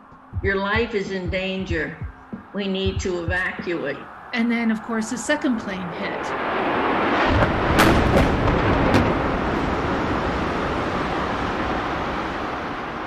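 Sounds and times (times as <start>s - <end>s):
sharp cracks: 7.2s - 9.7s
deep explosion boom and rumble: 7.3s - 11.0s.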